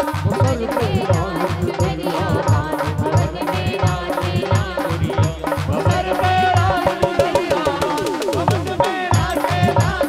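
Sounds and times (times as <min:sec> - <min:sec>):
bending melody line: 0:00.0 - 0:10.0
fast steady drum beat: 0:00.0 - 0:10.0.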